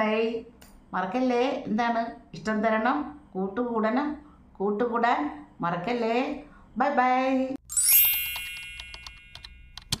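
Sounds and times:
bright shimmering chime: 7.7s - 9.4s.

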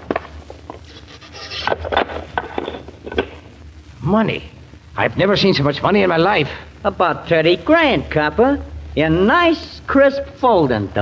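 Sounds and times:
wood scraping: 0.0s - 3.4s.

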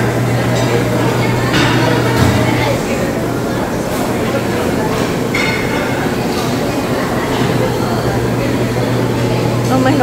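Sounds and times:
background murmur of voices: 0.0s - 10.0s.

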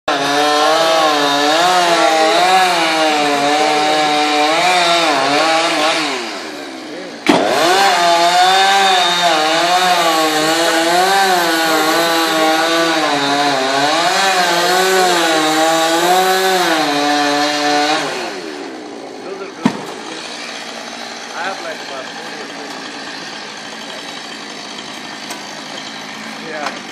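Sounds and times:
chainsaw cutting wood: 0.1s - 26.9s
chainsaw idling: 0.1s - 26.9s
sharp knock: 7.2s - 7.5s.

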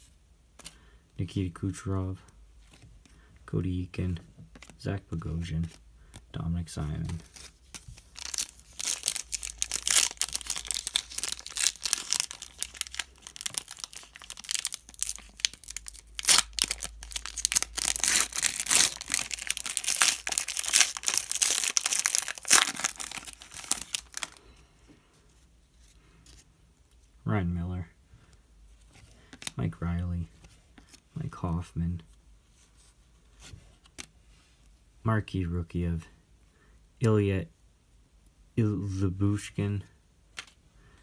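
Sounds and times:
foil wrapper crinkling and tearing: 7.7s - 24.4s.

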